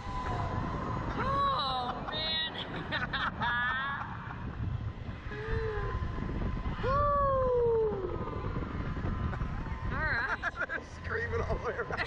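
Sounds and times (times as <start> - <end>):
wind rumble on microphone: 0.0 - 12.0
people laughing: 1.6 - 4.6, 10.2 - 12.0.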